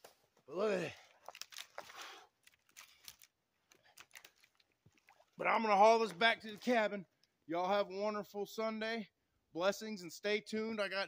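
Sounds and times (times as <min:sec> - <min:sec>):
dry branches rustling and clicking: 0:01.1 - 0:05.2.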